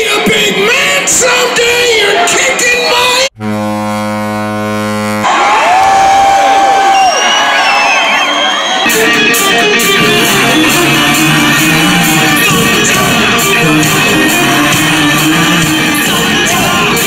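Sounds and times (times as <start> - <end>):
crowd noise: 0.0 - 3.4, 5.2 - 17.0
live rock band: 8.8 - 17.0.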